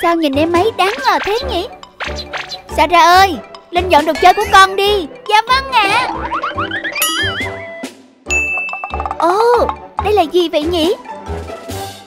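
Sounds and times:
cheerful children's music: 0:00.0 - 0:12.0
cartoon ding sound effect: 0:05.9 - 0:09.8.

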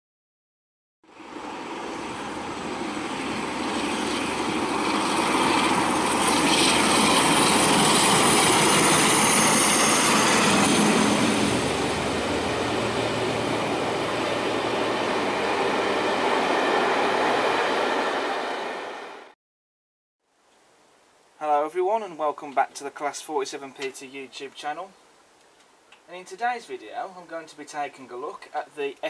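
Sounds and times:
passenger train passing: 0:01.1 - 0:19.4.

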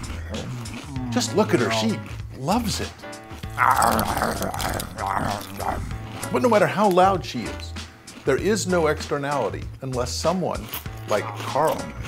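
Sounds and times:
person grunting yum: 0:00.0 - 0:02.2, 0:03.4 - 0:06.1
person crunching potato chips: 0:00.0 - 0:02.7, 0:03.3 - 0:08.5, 0:09.4 - 0:12.0.

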